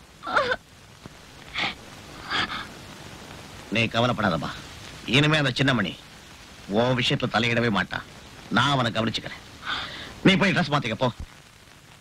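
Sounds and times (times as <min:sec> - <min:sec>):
woman sobbing: 0:00.2 - 0:00.6, 0:01.5 - 0:02.7.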